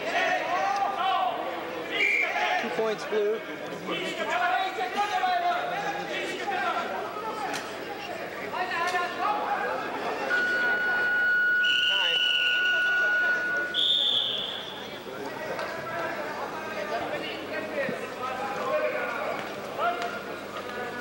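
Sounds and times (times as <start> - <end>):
voices in a hall: 0.0 - 21.0
referee's whistle blasts: 10.2 - 14.9.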